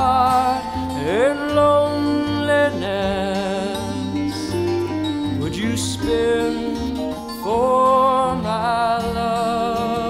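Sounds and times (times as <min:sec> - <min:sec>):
live band playing slow ballad: 0:00.0 - 0:10.0
man singing long notes: 0:00.0 - 0:10.0.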